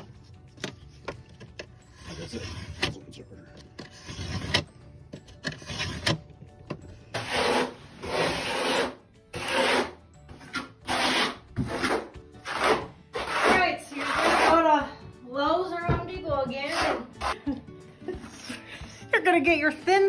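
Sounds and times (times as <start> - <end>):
knife scraping backer board: 7.2 - 14.6.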